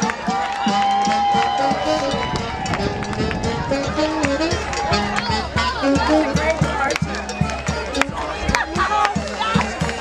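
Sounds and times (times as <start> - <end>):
drums steady beat: 0.0 - 10.0
saxophone: 0.0 - 10.0
walking bass: 0.0 - 10.0.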